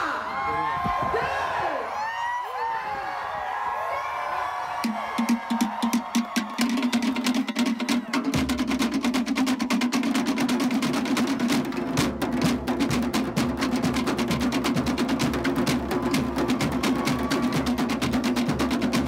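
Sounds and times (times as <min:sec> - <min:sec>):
crowd whooping and calling: 0:00.0 - 0:08.4, 0:16.0 - 0:18.1.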